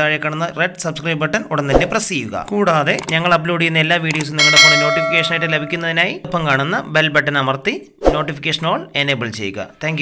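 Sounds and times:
person speaking: 4.2 - 6.0
notification bell chime: 4.4 - 5.8.

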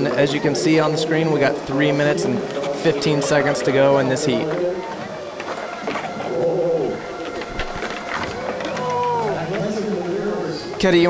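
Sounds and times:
distant voices: 0.0 - 11.0
skateboard wheels rolling on concrete: 0.0 - 11.0.

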